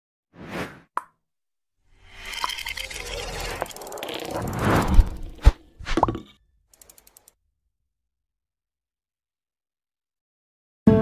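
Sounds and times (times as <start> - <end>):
whoosh: 3.4 - 6.0.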